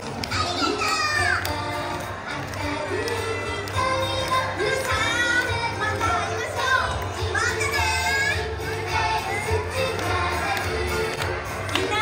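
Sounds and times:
stage show music with low beat: 0:00.0 - 0:12.0.

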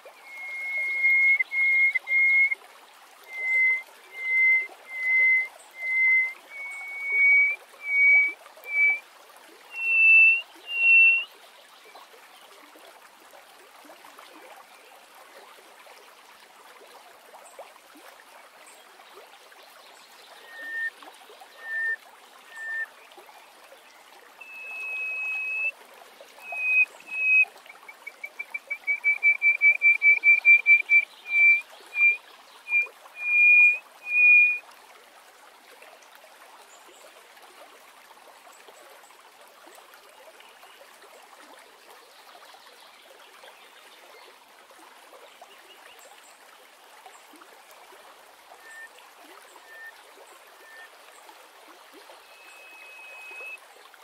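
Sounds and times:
faint steady noise: 0:00.0 - 0:54.0
bird singing whistled notes: 0:00.2 - 0:02.6, 0:03.3 - 0:09.0, 0:09.7 - 0:11.3, 0:20.4 - 0:20.9, 0:21.5 - 0:22.9, 0:24.4 - 0:25.7, 0:26.4 - 0:34.6, 0:48.6 - 0:48.9, 0:49.6 - 0:49.9, 0:50.6 - 0:50.9, 0:52.2 - 0:53.6.

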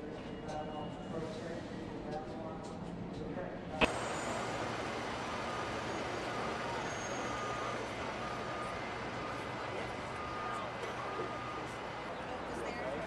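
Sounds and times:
street noise: 0:02.9 - 0:13.0
fire trucks idling: 0:03.8 - 0:13.0
short warning beep: 0:05.3 - 0:12.4.

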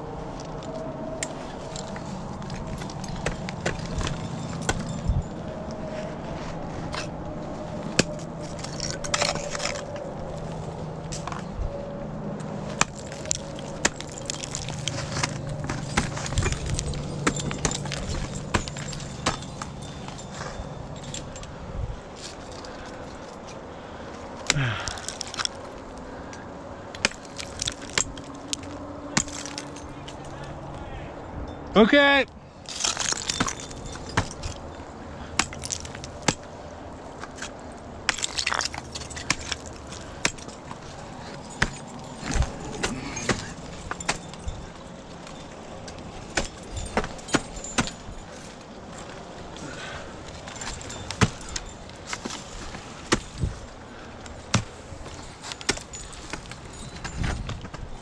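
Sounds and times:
metal gear clinking: 0:01.2 - 0:05.7, 0:12.6 - 0:21.6, 0:27.0 - 0:30.6, 0:32.6 - 0:36.5, 0:37.1 - 0:58.0
ice tools striking ice: 0:02.5 - 0:05.3, 0:07.9 - 0:10.0, 0:12.7 - 0:21.4, 0:24.5 - 0:25.6, 0:27.0 - 0:29.7, 0:32.7 - 0:34.6, 0:35.3 - 0:36.5, 0:37.2 - 0:49.1, 0:49.7 - 0:53.6, 0:54.5 - 0:57.8
person grunting: 0:24.5 - 0:25.0.

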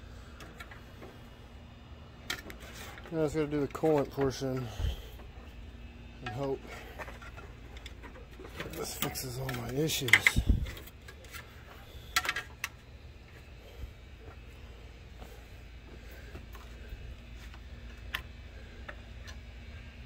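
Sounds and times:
low steady hum: 0:00.0 - 0:20.0.

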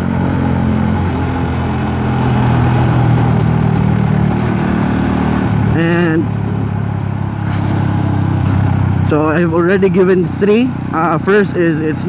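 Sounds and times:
motorcycle engine running: 0:00.0 - 0:12.0
road and wind hiss: 0:00.0 - 0:12.0.

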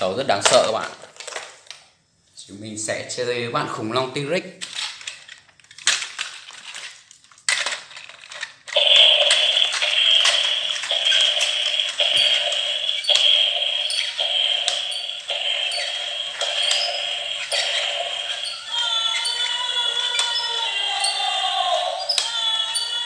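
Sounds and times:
toy motor and gears whirring: 0:04.8 - 0:23.0
toy stepping clicks: 0:08.3 - 0:23.0.

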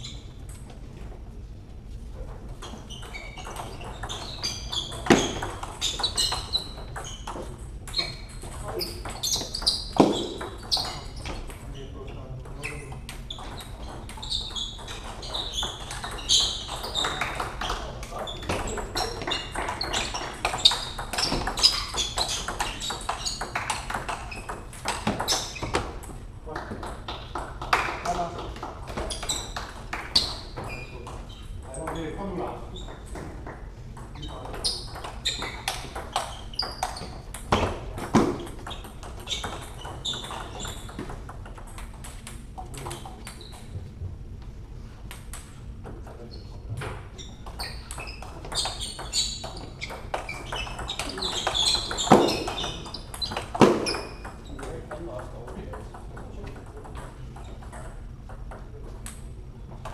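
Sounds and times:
table tennis ball hits: 0:03.0 - 0:11.6, 0:13.1 - 0:31.2, 0:32.8 - 0:43.6, 0:46.9 - 0:54.8.

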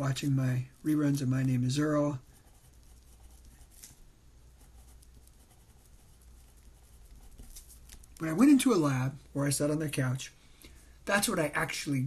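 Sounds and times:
pen scratching on paper: 0:00.9 - 0:03.8, 0:04.6 - 0:07.6.

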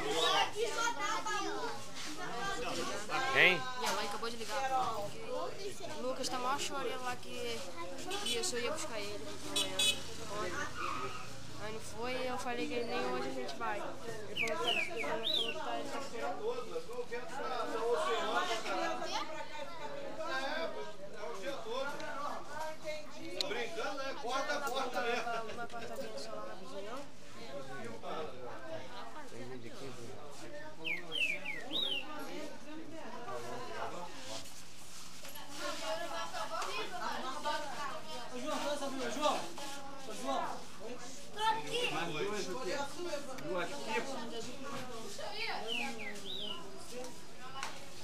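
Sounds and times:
children's voices: 0:00.0 - 0:04.5, 0:41.3 - 0:42.0
people talking at once: 0:00.0 - 0:34.6, 0:35.3 - 0:48.0.

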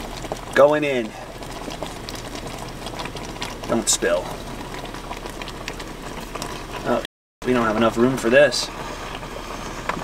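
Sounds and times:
sauce bubbling: 0:00.0 - 0:10.0.

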